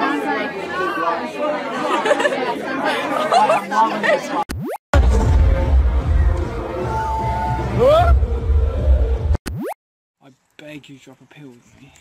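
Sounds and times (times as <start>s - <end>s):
bass-heavy party music: 4.9s - 9.4s.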